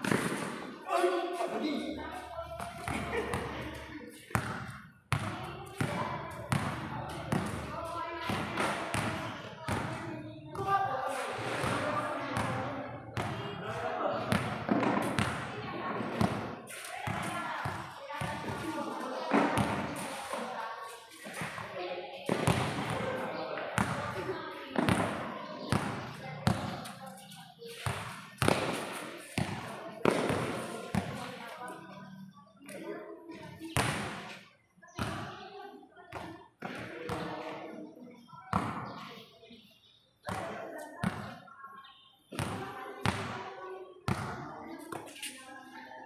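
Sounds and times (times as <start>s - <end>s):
voices talking: 0.0s - 46.0s
basketball bouncing on concrete: 4.3s - 10.7s, 14.3s - 18.7s, 27.8s - 31.3s.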